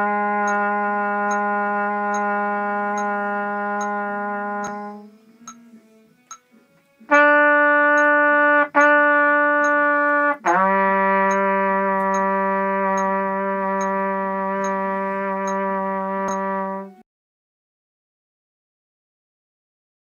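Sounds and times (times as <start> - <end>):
trumpet playing long tones: 0.0 - 6.2, 7.0 - 17.0
metronome clicking: 0.0 - 17.0.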